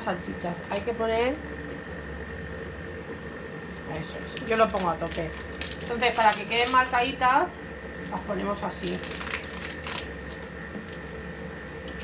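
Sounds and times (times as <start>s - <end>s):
kitchen hiss and hum: 0.0s - 12.0s.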